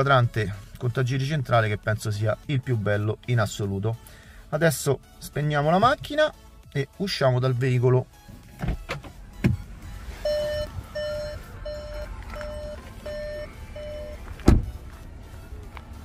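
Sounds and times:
car warning chime beeping: 0:04.9 - 0:15.4
car door shutting with a thump: 0:08.5 - 0:09.6, 0:14.3 - 0:14.8.

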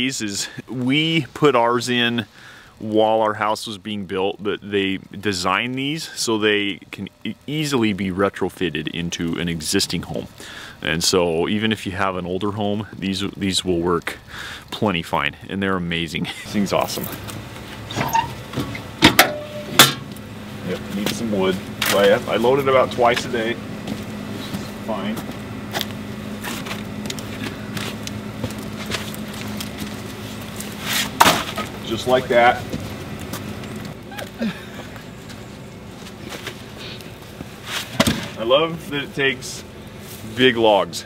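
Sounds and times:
firewood logs being handled: 0:16.3 - 0:39.0
footsteps: 0:16.7 - 0:38.4
metal firebox door clanking: 0:17.9 - 0:20.1.

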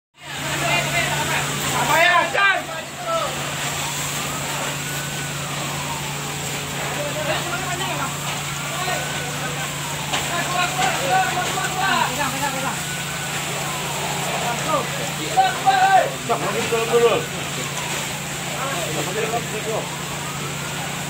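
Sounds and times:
constant hiss: 0:00.2 - 0:21.0
emergency vehicle siren wailing: 0:00.2 - 0:21.0
voices shouting: 0:08.5 - 0:16.4.

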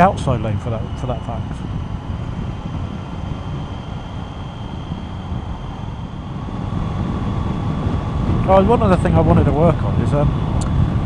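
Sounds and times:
motorcycle engine: 0:00.0 - 0:11.0
road noise: 0:00.0 - 0:11.0
wind noise: 0:00.0 - 0:11.0.

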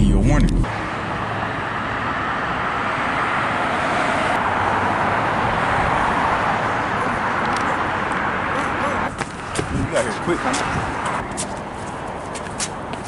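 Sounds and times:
road traffic hiss: 0:00.7 - 0:13.0.

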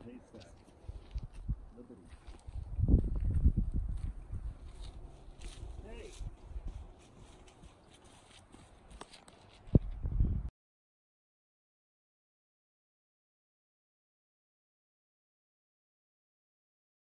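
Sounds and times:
low rumble on microphone: 0:02.6 - 0:05.8, 0:09.7 - 0:10.5.

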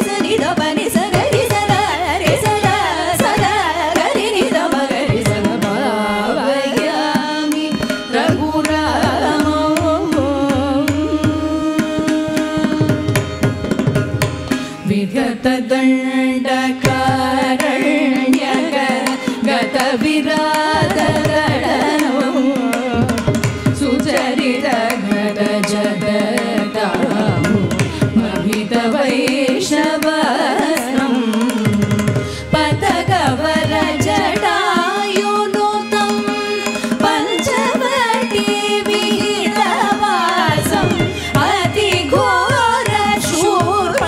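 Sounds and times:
women singing together: 0:00.0 - 0:13.2, 0:14.8 - 0:44.0
mridangam drum strokes: 0:00.0 - 0:44.0
violin: 0:00.0 - 0:44.0.

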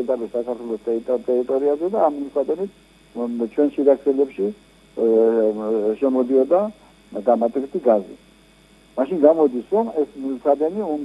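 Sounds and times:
person talking: 0:00.0 - 0:08.2, 0:09.0 - 0:11.0.

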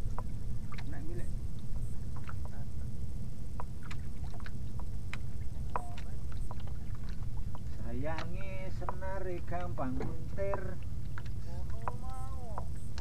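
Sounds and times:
boat engine low rumble: 0:00.0 - 0:13.0
man talking: 0:00.9 - 0:01.3, 0:07.7 - 0:10.8
fishing tackle clicks and knocks: 0:03.6 - 0:13.0.

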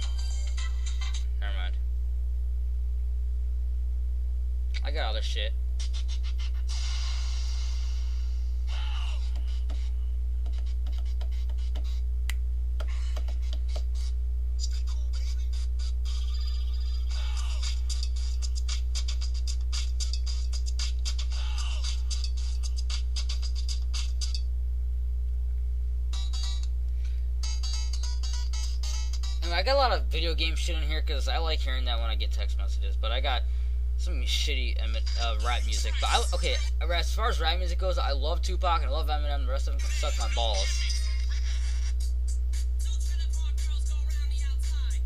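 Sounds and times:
low electrical hum: 0:00.0 - 0:45.0
music from small phone speaker: 0:16.1 - 0:24.4, 0:27.4 - 0:29.4.

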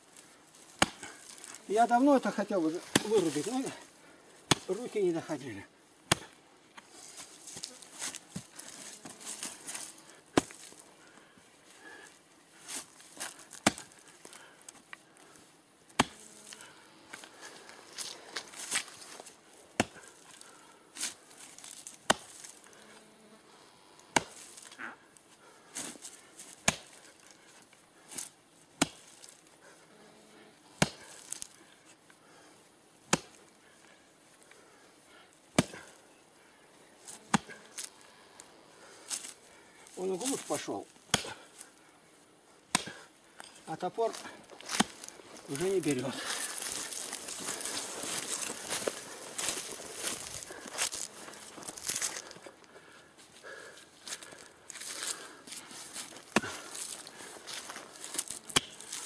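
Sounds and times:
axe chopping into root: 0:00.7 - 0:01.3, 0:02.7 - 0:03.7, 0:04.5 - 0:05.0, 0:06.1 - 0:06.4, 0:10.3 - 0:10.7, 0:13.2 - 0:14.0, 0:15.9 - 0:16.3, 0:19.8 - 0:20.1, 0:22.0 - 0:22.5, 0:24.1 - 0:24.5, 0:26.6 - 0:27.0, 0:28.8 - 0:29.2, 0:30.8 - 0:31.5, 0:33.1 - 0:33.4, 0:35.5 - 0:35.9, 0:37.3 - 0:37.9, 0:41.1 - 0:41.6, 0:42.7 - 0:43.1, 0:44.6 - 0:45.1, 0:56.3 - 0:59.0.

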